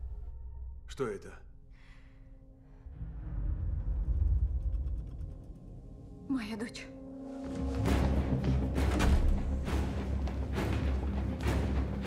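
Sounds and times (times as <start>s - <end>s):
deep rumble: 2.7s - 9.8s.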